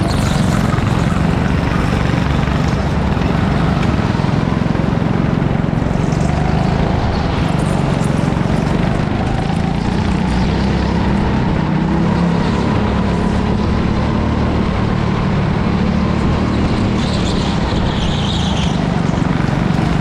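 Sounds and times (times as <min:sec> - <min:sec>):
go-kart engine drone: 0:00.0 - 0:20.0.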